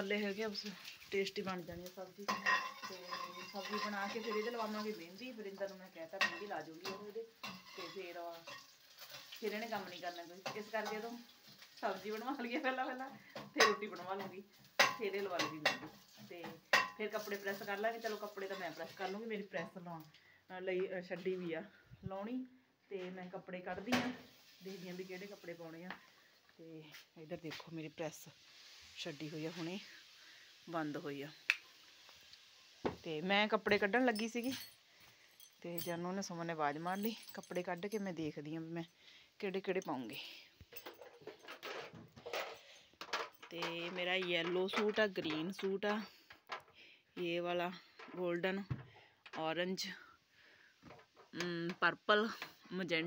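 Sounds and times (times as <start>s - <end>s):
woman speaking softly: 16.3s - 25.9s.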